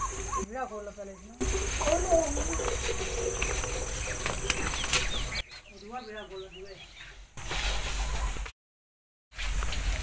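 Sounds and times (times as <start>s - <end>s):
bird chirps: 0.0s - 7.3s.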